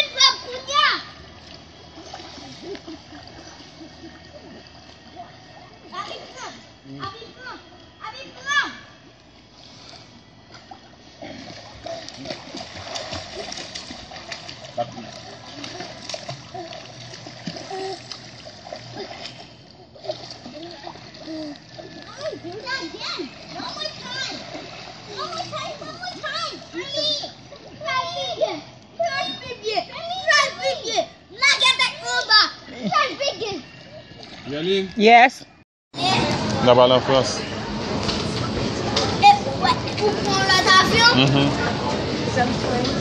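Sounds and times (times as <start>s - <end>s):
pool water splashing: 0.0s - 35.4s, 36.0s - 43.0s.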